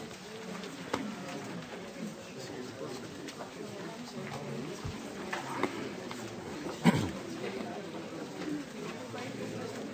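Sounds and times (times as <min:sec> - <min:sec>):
murmur of people talking: 0:00.0 - 0:09.9.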